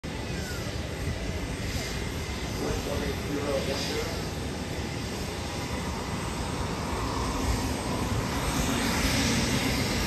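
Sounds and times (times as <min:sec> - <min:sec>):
faint high whine: 0:00.0 - 0:10.0
jet engine rumble: 0:00.0 - 0:10.0.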